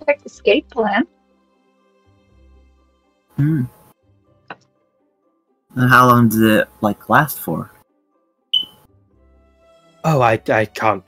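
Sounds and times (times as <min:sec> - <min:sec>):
faint background music: 0:00.0 - 0:11.0
short high beep: 0:08.6 - 0:08.8.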